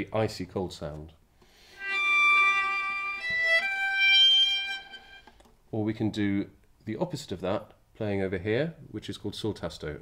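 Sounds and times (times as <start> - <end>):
bowed viola notes: 1.7 - 5.4.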